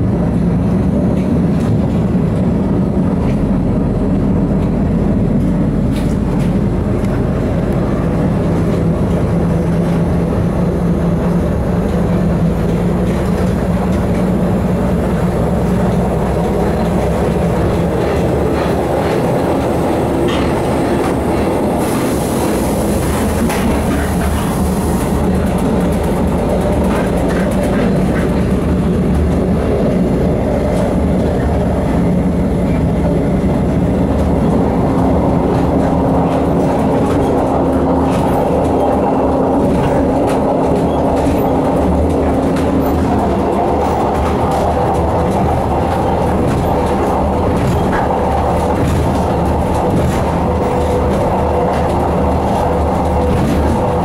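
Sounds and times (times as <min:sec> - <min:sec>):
diesel railcar engine drone: 0:00.0 - 0:54.0
wheels clicking over rail joints: 0:00.0 - 0:54.0.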